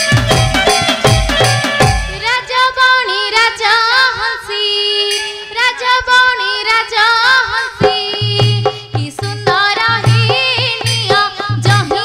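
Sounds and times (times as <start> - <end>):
drums: 0.0 - 2.6, 7.4 - 12.0.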